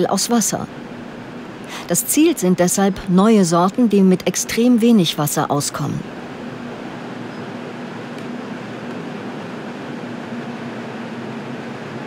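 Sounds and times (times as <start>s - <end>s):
ventilation fans rushing: 0.0s - 5.0s, 6.0s - 12.0s
low steady hum: 0.0s - 12.0s.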